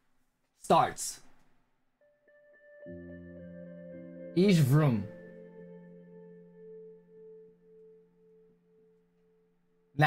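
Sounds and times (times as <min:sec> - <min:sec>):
ambient music with bell-like tones: 0:02.0 - 0:10.0.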